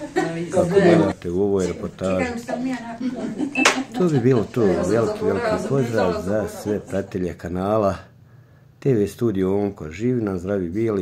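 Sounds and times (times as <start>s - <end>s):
people talking: 0.0s - 8.1s.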